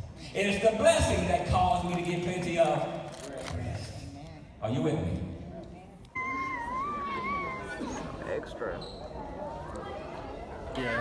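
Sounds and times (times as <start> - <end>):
baby squealing: 6.2 - 8.3.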